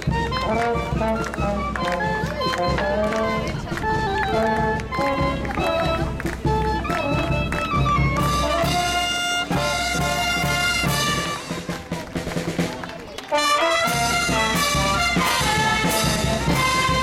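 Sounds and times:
brass band playing dance tune: 0.0s - 17.0s.

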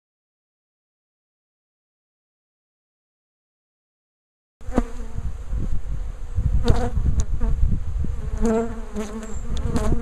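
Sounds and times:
bee swarm buzzing: 4.6s - 10.0s.

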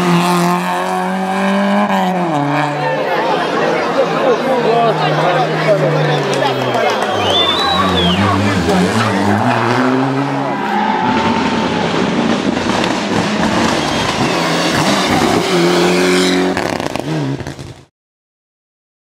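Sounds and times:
spectators' voices: 0.0s - 16.2s
rally car engines revving: 0.0s - 17.9s.

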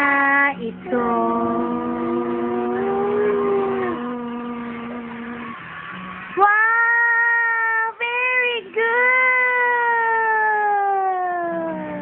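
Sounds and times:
boy singing long high notes: 0.0s - 5.6s.

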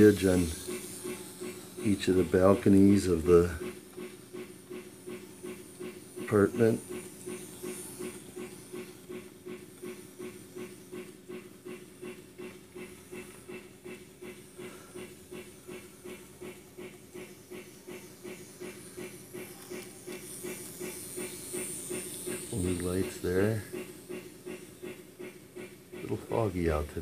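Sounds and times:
simulated steam locomotive chuffing: 0.0s - 27.0s
steady hum: 0.0s - 27.0s.

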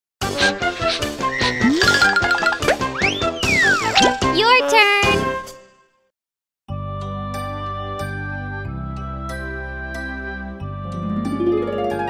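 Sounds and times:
upbeat children's music: 0.2s - 5.7s.

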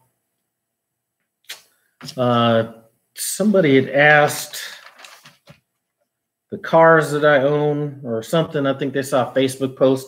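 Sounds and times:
man speaking: 2.0s - 4.9s, 6.5s - 10.0s.

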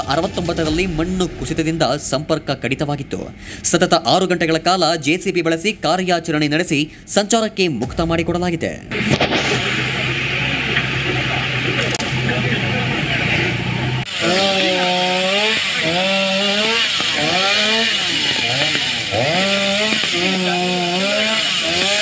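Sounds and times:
chainsaw cutting wood: 14.1s - 22.0s.

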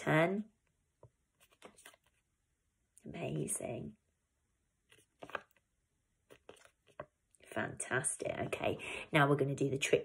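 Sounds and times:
paper flashcard rustle: 1.4s - 2.2s, 4.9s - 5.6s, 6.3s - 7.1s.

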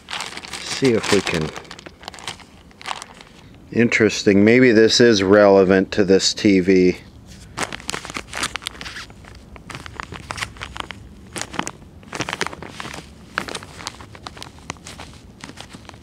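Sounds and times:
plastic bag crinkling: 0.0s - 3.5s, 7.4s - 16.0s.

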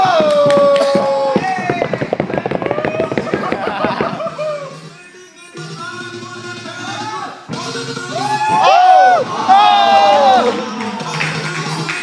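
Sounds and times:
crowd ooh: 3.2s - 4.9s, 8.1s - 12.0s
crowd shouts: 8.2s - 11.0s
crowd clapping: 10.4s - 12.0s.

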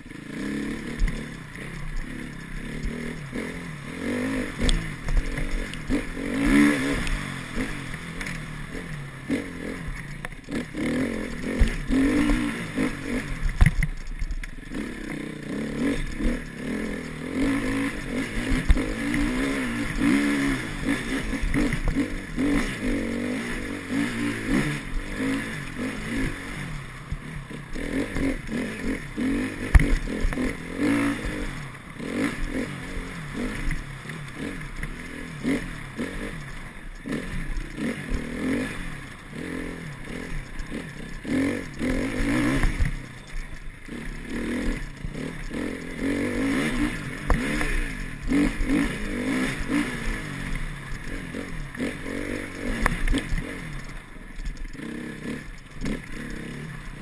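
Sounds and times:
dirt bike engine revving: 0.0s - 57.0s
bike knocks and rattles: 0.8s - 14.9s, 15.5s - 32.8s, 40.1s - 50.0s.

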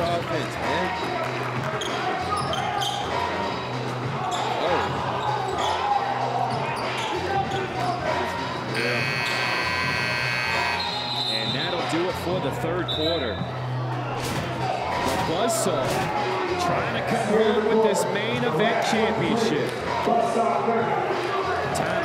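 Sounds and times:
arena buzzer blare: 8.7s - 11.5s.

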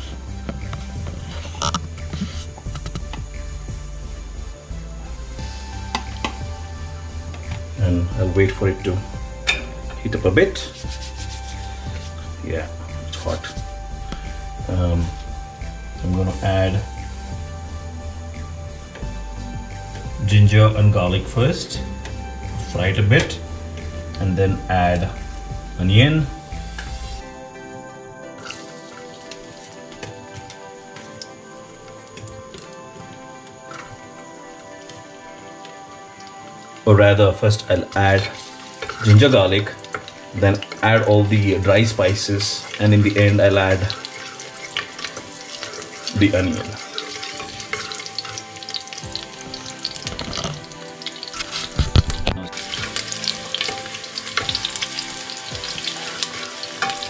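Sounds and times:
background music: 0.0s - 57.0s
ginger and garlic crackling in oil: 0.0s - 57.0s
wooden spatula stirring: 10.6s - 12.3s, 37.9s - 57.0s.

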